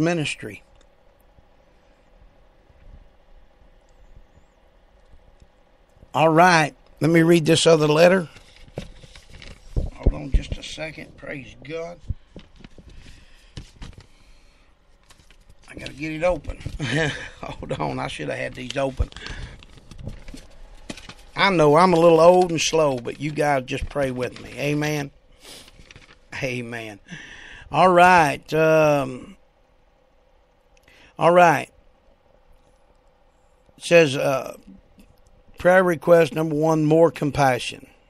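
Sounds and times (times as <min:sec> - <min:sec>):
steady low hum: 0:00.0 - 0:38.0
paper envelope rustling: 0:07.8 - 0:27.0.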